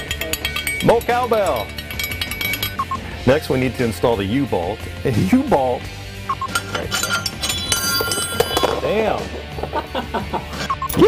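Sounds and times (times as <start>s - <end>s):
metal hardware clinking: 0.0s - 2.9s, 6.3s - 9.0s.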